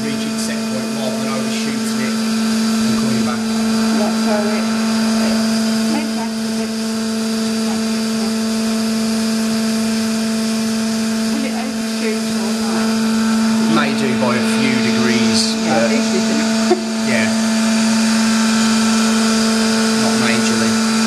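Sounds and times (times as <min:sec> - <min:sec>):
machine motor hum and whine: 0:00.0 - 0:21.0.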